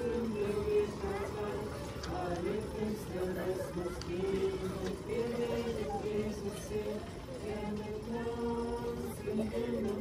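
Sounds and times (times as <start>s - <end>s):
group singing a slow hymn: 0.0s - 10.0s.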